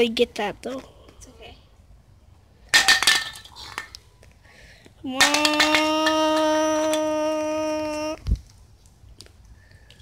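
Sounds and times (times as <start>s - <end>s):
spray can clinking on concrete: 2.7s - 4.0s, 5.2s - 7.1s.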